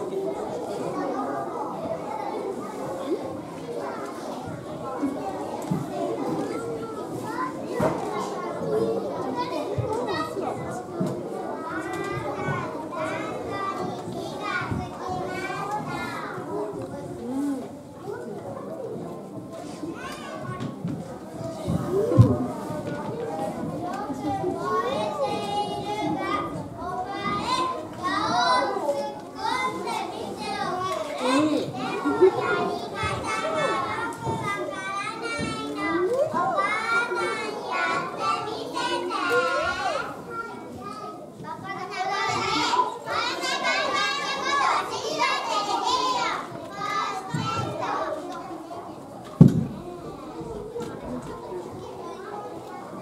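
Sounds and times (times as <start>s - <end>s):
children chattering: 0.0s - 53.0s.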